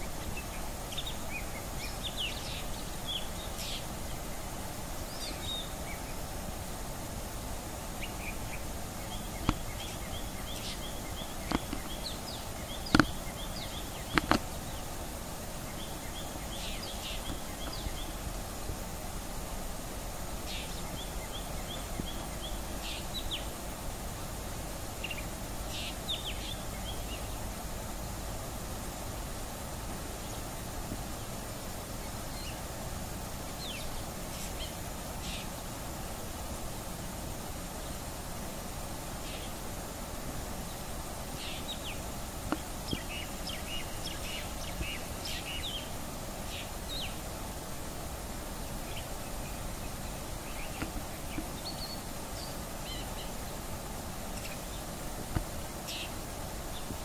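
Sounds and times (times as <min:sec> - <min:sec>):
steady background hiss: 0:00.0 - 0:57.0
bird calling: 0:08.0 - 0:15.0.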